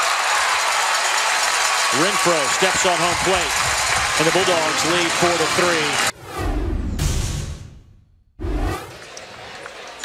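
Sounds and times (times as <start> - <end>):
ballpark background noise: 1.1 - 6.1, 8.9 - 10.0
flanged whoosh sound effect: 8.4 - 9.0.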